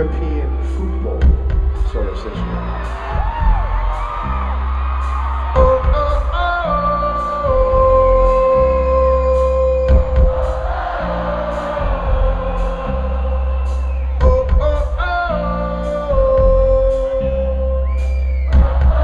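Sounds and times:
crowd singing along: 5.5 - 16.2, 18.5 - 19.0.

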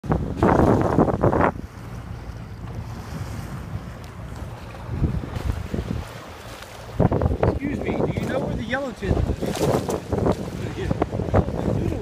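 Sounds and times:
water rushing past hull: 0.0 - 12.0
wind buffeting microphone: 0.0 - 12.0.

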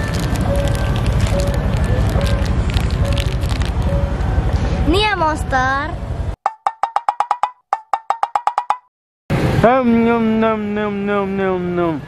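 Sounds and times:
rapid wood block knocks: 6.5 - 8.9.

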